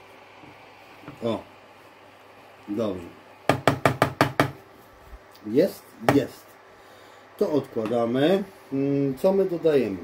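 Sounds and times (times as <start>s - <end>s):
wooden spatula knocking on pan: 3.5s - 4.6s.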